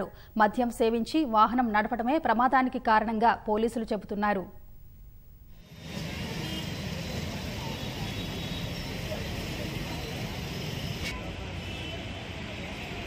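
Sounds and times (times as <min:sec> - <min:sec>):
traffic noise: 0:05.6 - 0:13.0.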